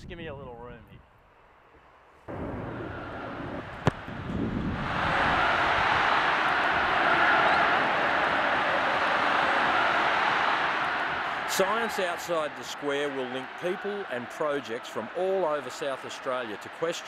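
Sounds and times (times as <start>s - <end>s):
ball struck with a thud: 3.8s - 4.2s.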